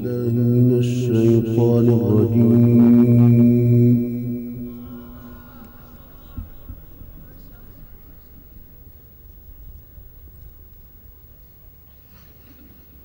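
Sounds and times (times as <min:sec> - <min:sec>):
man chanting long melodic note: 0:00.0 - 0:08.6
low background noise: 0:00.0 - 0:13.0.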